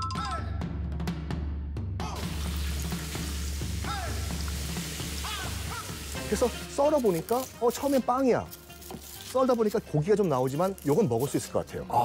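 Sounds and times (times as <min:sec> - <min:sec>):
cutlet sizzling in hot oil: 0:02.2 - 0:09.4.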